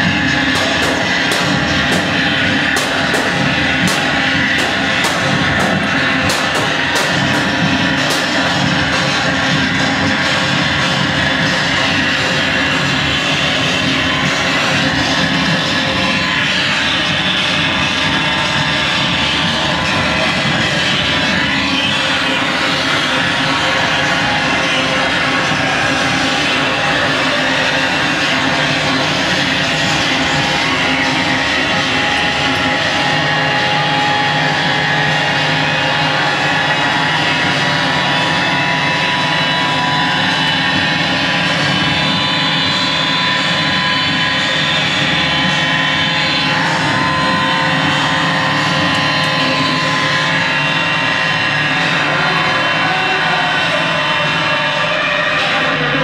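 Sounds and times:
harsh electronic noise music: 0.0s - 56.0s
steady drone tones: 0.0s - 56.0s.

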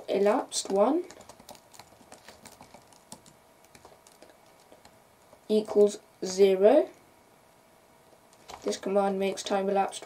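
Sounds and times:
faint keyboard typing: 0.0s - 6.0s, 8.2s - 10.0s.

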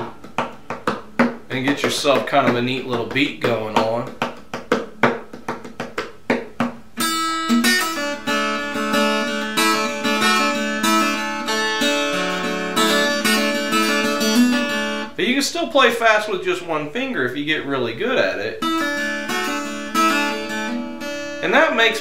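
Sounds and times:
fingerpicked acoustic guitar: 0.0s - 15.2s, 18.6s - 22.0s
fingertips drumming: 0.0s - 15.2s.

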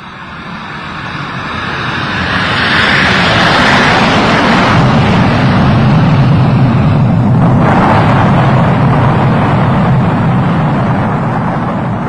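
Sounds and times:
jet engines roaring: 0.0s - 12.0s.

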